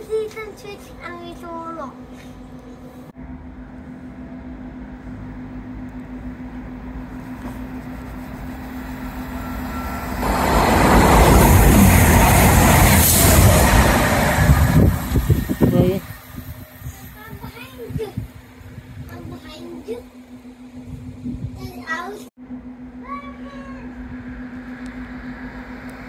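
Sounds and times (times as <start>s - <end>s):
diesel train passing at speed: 0.8s - 19.1s, 23.7s - 26.0s.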